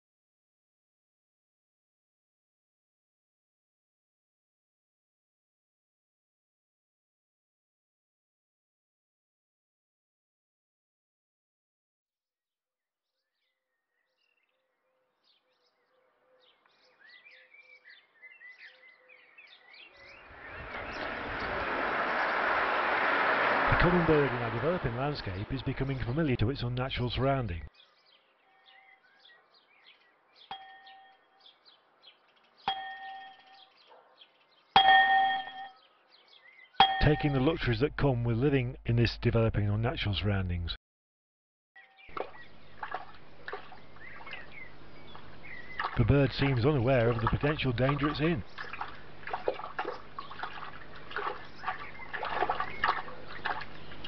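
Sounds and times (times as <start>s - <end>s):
faint bird chirps: 13.1s - 26.2s, 27.8s - 37.4s
church bell tolling: 36.8s - 37.6s
water trickling and dripping: 42.1s - 54.0s.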